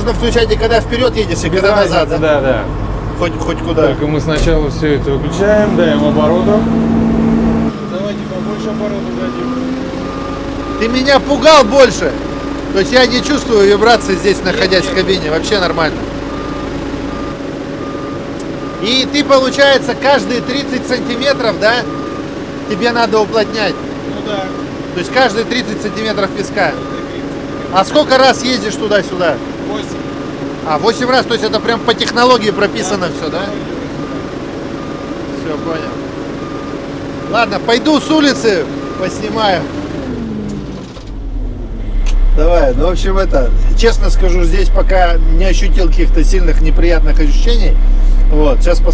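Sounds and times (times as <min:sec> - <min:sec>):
deep rumble: 0:00.0 - 0:07.7, 0:40.2 - 0:48.9
diesel roller engine humming: 0:00.0 - 0:48.9
reversing alarm beeping: 0:08.7 - 0:28.2, 0:31.1 - 0:33.3, 0:33.9 - 0:39.6.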